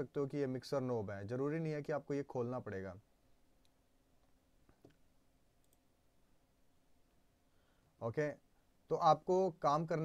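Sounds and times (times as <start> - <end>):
faint mouse clicks: 3.6 - 5.9.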